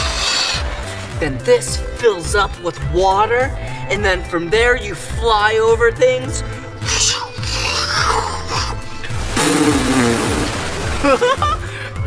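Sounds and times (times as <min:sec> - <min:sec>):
background music: 0:00.0 - 0:12.0
cartoon water splash and hiss: 0:09.2 - 0:11.4.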